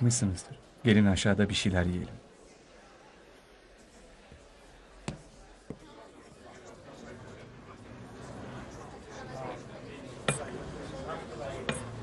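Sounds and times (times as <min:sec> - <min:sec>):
murmur of crowd voices: 0:00.0 - 0:12.0
tableware clinking: 0:10.2 - 0:10.6.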